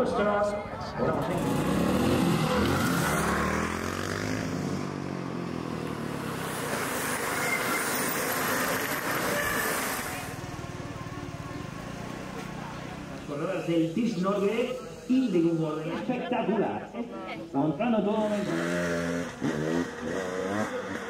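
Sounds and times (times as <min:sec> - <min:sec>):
dirt motorcycle passing: 0:00.1 - 0:15.2, 0:16.7 - 0:21.0
bike tyres hissing: 0:06.5 - 0:10.4.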